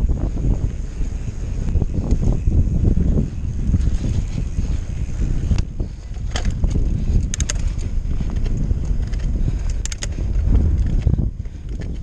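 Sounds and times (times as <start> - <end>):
bike clicks and rattles: 0.0 - 12.0
bike tyres rolling on gravel: 0.0 - 12.0
wind buffeting microphone: 0.0 - 12.0.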